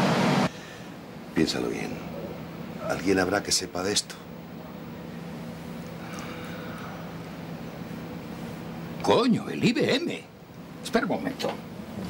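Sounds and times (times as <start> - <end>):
steady low background hum: 0.0 - 12.0.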